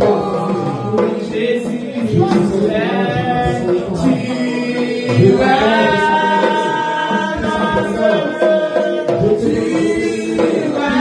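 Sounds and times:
hand frame drum beating: 0.0s - 11.0s
voices singing worship song: 0.0s - 11.0s.

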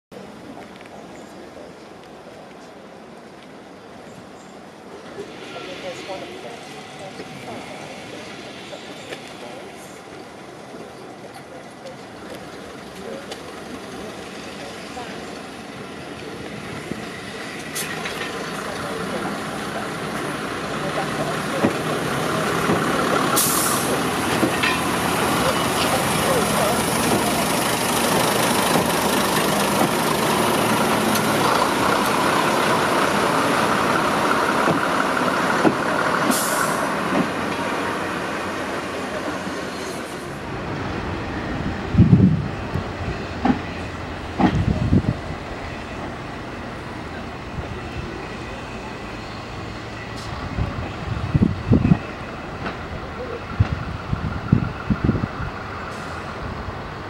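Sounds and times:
diesel railcar running past: 0.1s - 57.0s
short hiss: 23.4s - 24.0s.

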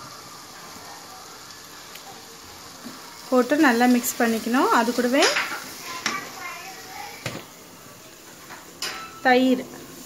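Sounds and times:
spatula stirring sizzling food: 0.0s - 10.0s.

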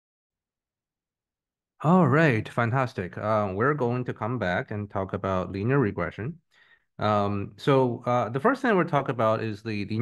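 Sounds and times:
man speaking: 1.8s - 6.4s, 7.0s - 10.0s.

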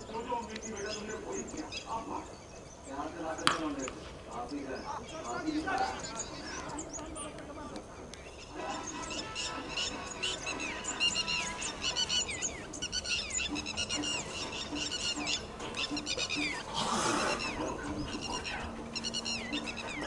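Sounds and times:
birds chirping: 0.0s - 20.0s.

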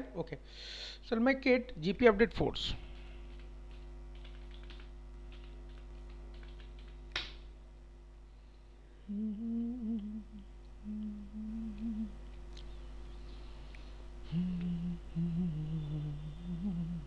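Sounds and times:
steady electrical hum: 0.0s - 17.0s
computer keys typing: 3.3s - 7.0s
person humming a tune: 9.0s - 12.8s, 14.2s - 17.0s.

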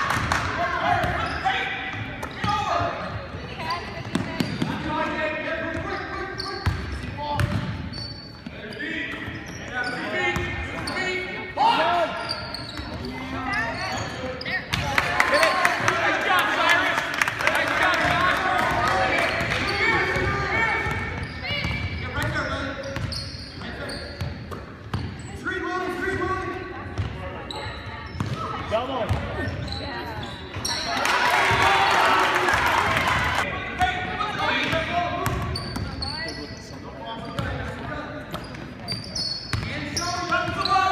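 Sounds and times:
voices in gym: 0.0s - 40.9s
sneakers squeaking on court: 0.1s - 15.9s, 18.0s - 25.5s, 26.8s - 31.7s, 33.1s - 40.9s
basketball bouncing: 6.6s - 7.8s.

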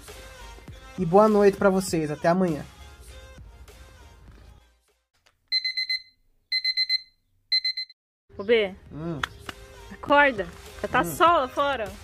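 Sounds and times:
electronic alarm beeping: 5.5s - 8.0s.

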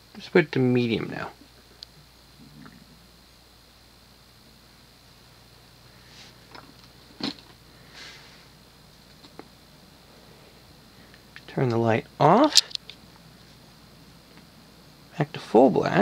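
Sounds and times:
ceiling fan hum: 0.0s - 16.0s.

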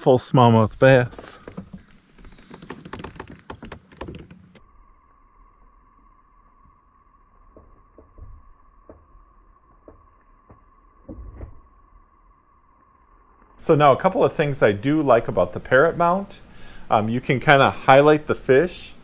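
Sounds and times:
faint hum: 4.1s - 19.0s.

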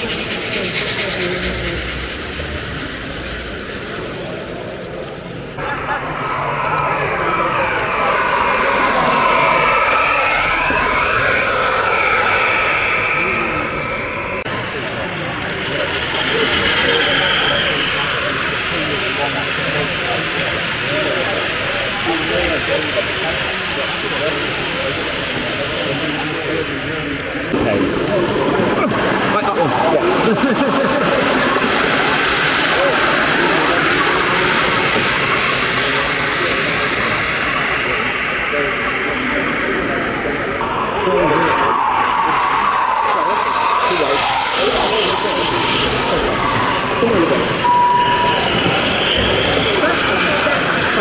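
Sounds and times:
crowd chatter: 0.0s - 51.0s
model train motor whine: 8.6s - 27.5s, 31.4s - 41.5s, 42.2s - 51.0s.

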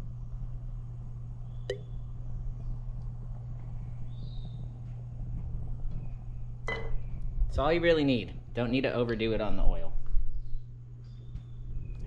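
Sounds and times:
steady low hum: 0.0s - 12.0s
sharp clink: 6.7s - 7.0s.

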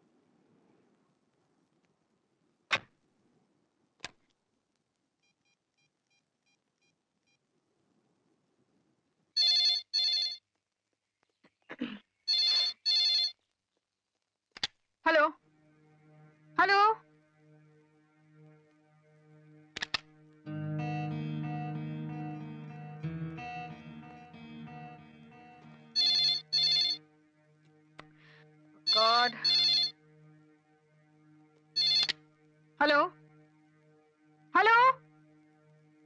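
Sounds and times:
telephone ringing: 9.4s - 10.4s, 12.3s - 13.4s, 25.9s - 27.0s, 28.9s - 30.0s, 31.8s - 32.2s.

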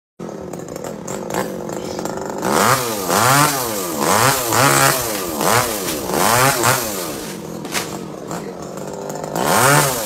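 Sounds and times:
chainsaw engine idling: 0.2s - 10.0s.

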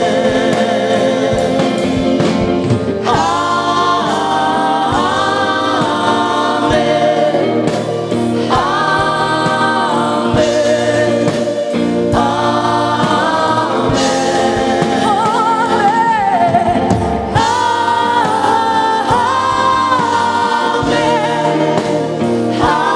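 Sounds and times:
acoustic guitar: 0.0s - 22.9s
singers in harmony: 0.0s - 22.9s
worship band playing: 0.0s - 22.9s.

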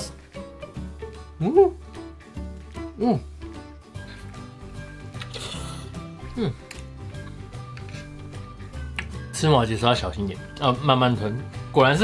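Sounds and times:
background music: 0.0s - 12.0s
slurping noodles: 5.2s - 6.0s.

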